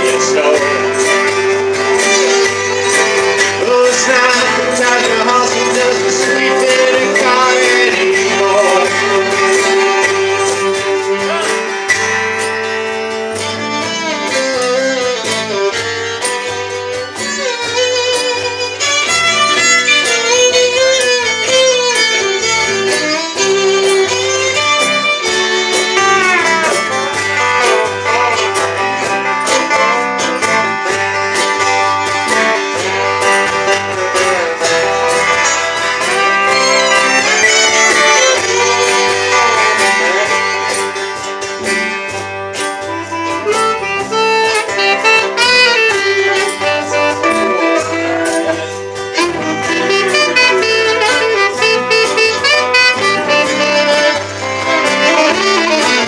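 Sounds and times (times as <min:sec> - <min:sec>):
fiddle melody: 0:00.0 - 0:56.0
saxophone melody: 0:00.0 - 0:56.0
strummed acoustic guitars: 0:00.0 - 0:56.0.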